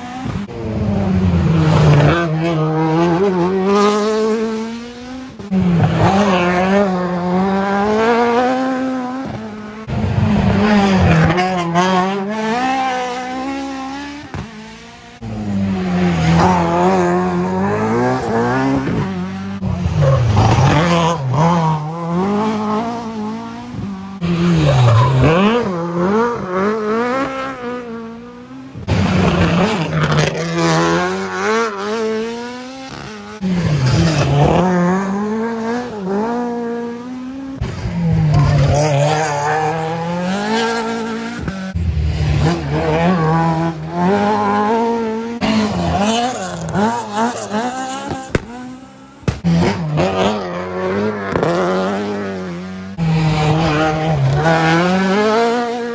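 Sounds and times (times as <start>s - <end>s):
rally car engines revving: 0.0s - 55.9s.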